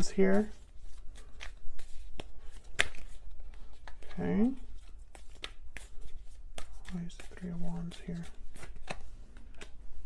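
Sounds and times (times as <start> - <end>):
cards being shuffled: 0.0 - 10.0.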